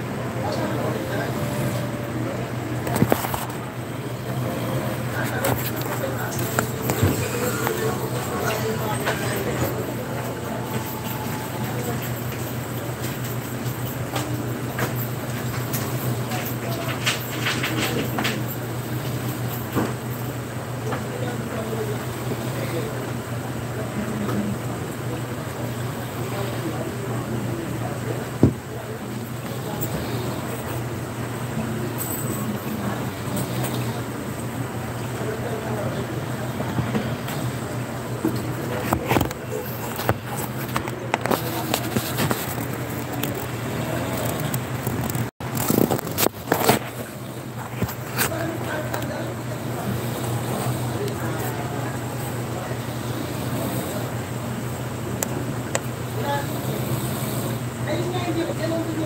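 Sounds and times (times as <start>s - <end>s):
faint background voices: 0.0s - 59.0s
steady low hum: 0.0s - 59.0s.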